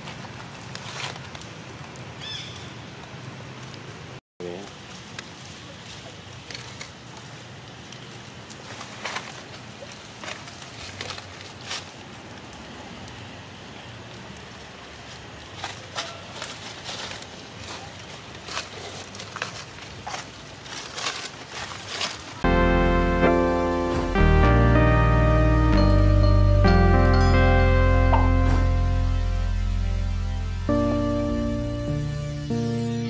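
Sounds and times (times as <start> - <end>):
outdoor background hiss: 0.0 - 33.0
piano music: 22.4 - 33.0.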